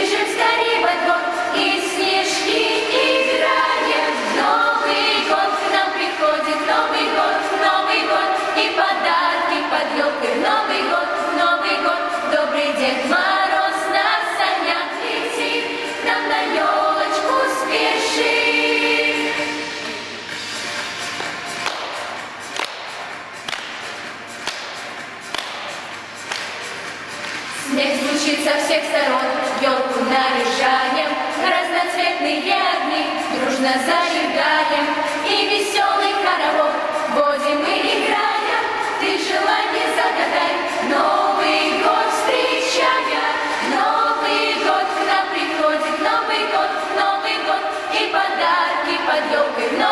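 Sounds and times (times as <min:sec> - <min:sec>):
girls' choir singing: 0:00.0 - 0:20.2, 0:27.5 - 0:49.9
single hand claps: 0:21.2 - 0:27.4.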